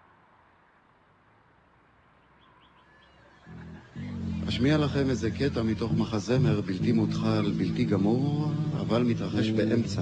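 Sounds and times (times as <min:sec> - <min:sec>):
faint outdoor background: 0:00.0 - 0:10.0
faint bird chirps: 0:02.1 - 0:04.0.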